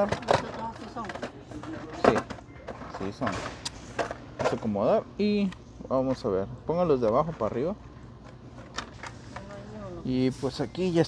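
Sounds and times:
people talking: 0:00.0 - 0:03.4, 0:09.4 - 0:11.0.

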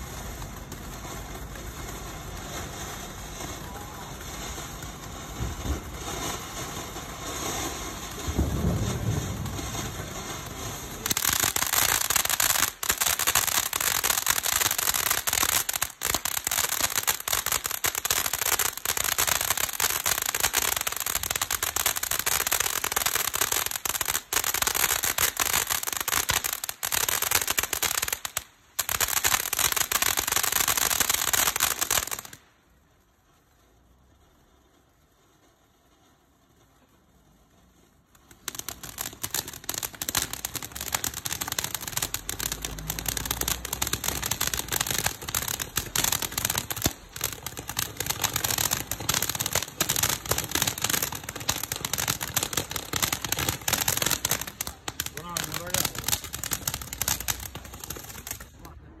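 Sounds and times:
firework crackling: 0:00.0 - 0:59.0
fountain firework hissing sparks: 0:00.0 - 0:59.0.

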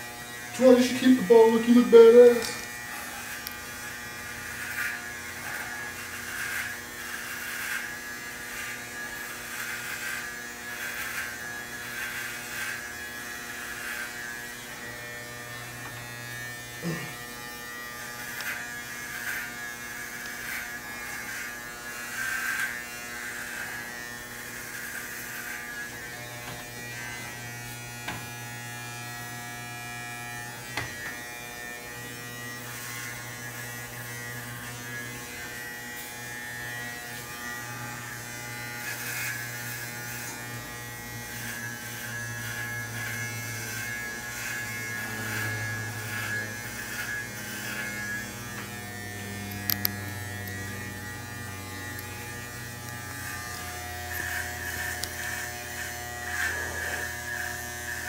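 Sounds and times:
electric hair clippers buzzing: 0:00.0 - 0:58.0.

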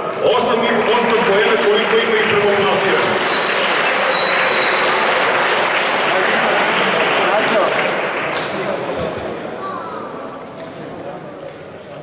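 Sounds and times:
murmur of voices: 0:00.0 - 0:12.0
audience applause: 0:00.6 - 0:08.9.

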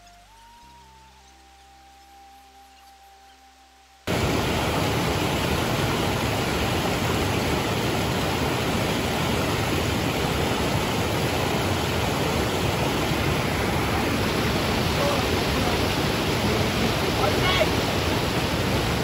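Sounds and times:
waterfall and rapids rushing: 0:00.0 - 0:19.0.

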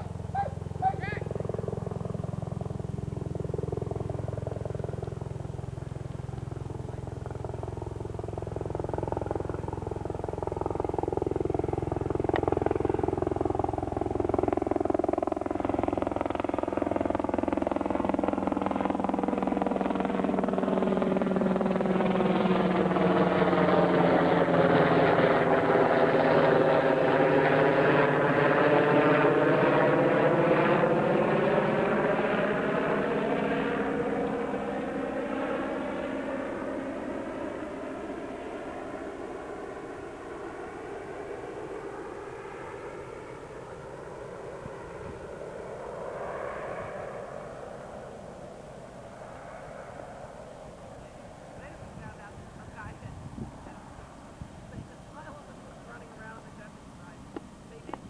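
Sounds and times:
aircraft engine passing overhead: 0:00.0 - 0:58.0.

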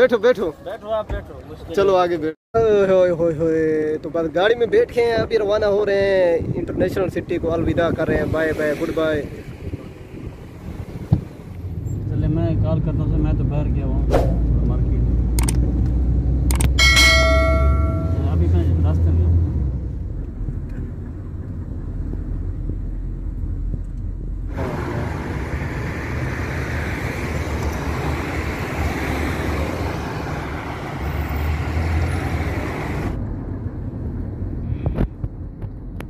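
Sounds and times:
car engine and road rumble: 0:03.2 - 0:36.0
short ringing chime: 0:16.8 - 0:18.4.

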